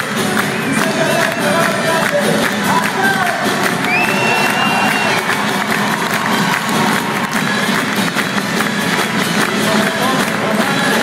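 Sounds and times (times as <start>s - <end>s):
crowd clapping in rhythm: 0.0s - 11.0s.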